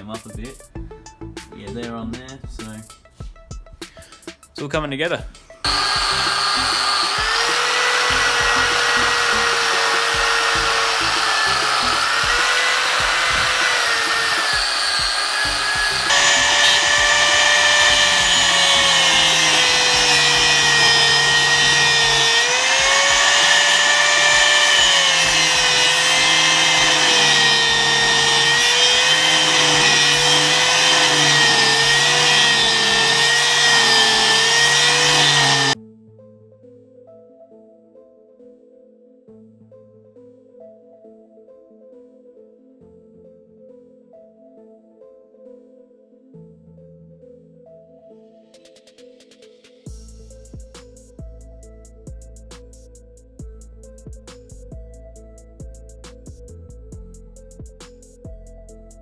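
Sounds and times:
angle grinder cutting shaft: 5.7s - 35.8s
electric grinder on steel: 5.7s - 35.8s.

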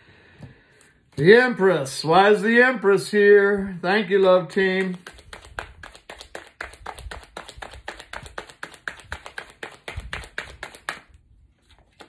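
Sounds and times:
cards being shuffled: 4.2s - 12.0s.

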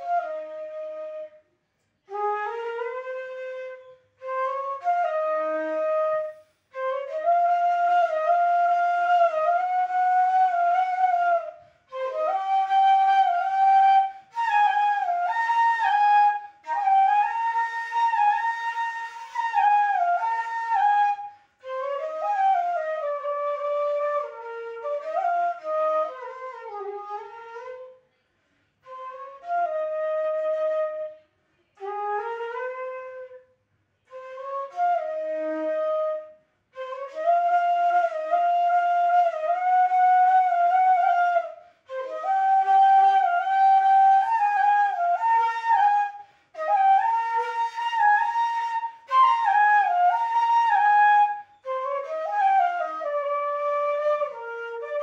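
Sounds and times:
bamboo flute melody: 0.0s - 28.0s, 28.8s - 55.0s.

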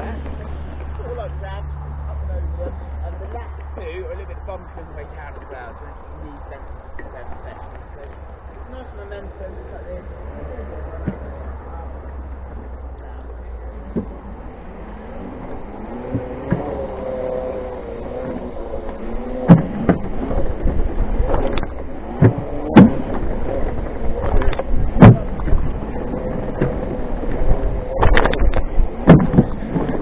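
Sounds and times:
wind rumble on microphone: 0.0s - 30.0s
wheels knocking on wooden pallets: 19.4s - 30.0s.

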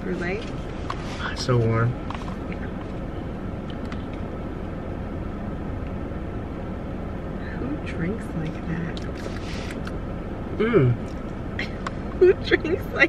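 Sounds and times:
car cabin rumble: 0.0s - 13.0s.

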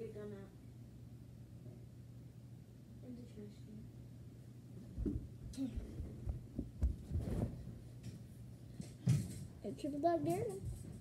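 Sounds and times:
dull thumps on carpet: 5.0s - 7.6s.

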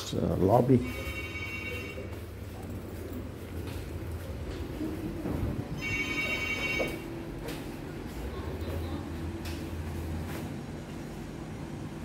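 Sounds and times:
steady low hum: 0.0s - 12.0s
high ringing electronic tone: 0.8s - 2.2s, 5.8s - 7.1s.

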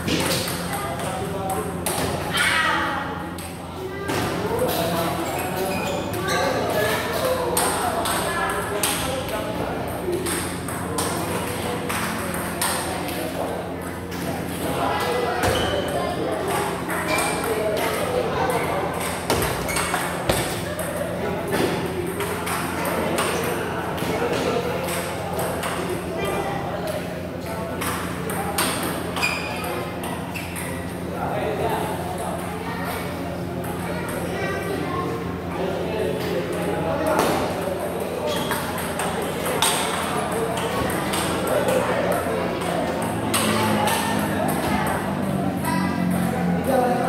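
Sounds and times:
background chatter: 0.0s - 47.0s
ping pong ball clicks: 9.9s - 13.4s, 38.3s - 45.2s.

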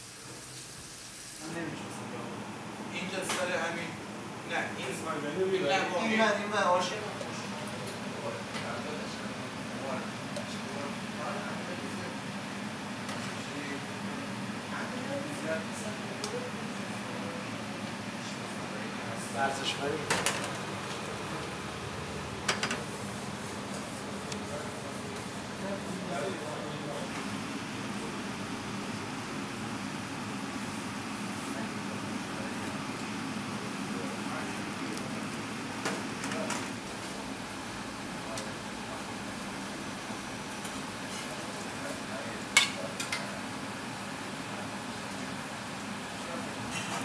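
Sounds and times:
kitchen hum and hiss: 0.0s - 47.0s.

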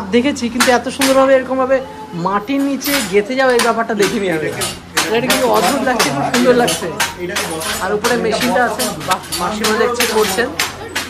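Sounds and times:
handloom clacking: 0.0s - 1.5s, 2.6s - 11.0s
voices talking: 0.0s - 11.0s.

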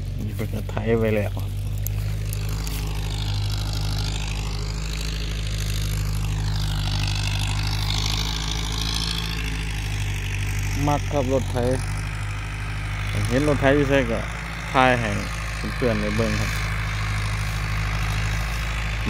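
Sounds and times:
tractor engine droning: 0.0s - 19.0s.

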